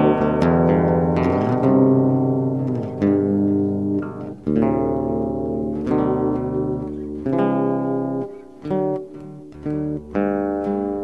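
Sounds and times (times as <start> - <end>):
acoustic guitar plucked chords: 0.0 - 11.0.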